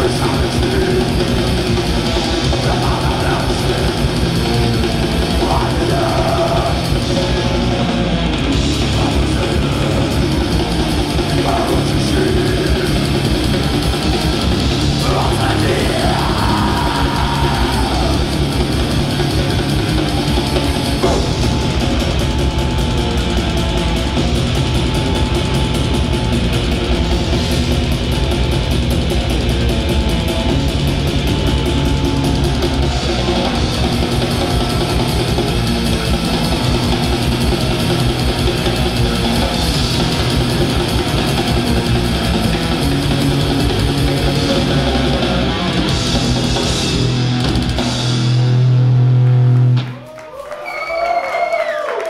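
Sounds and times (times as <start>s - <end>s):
metal band playing: 0.0s - 50.5s.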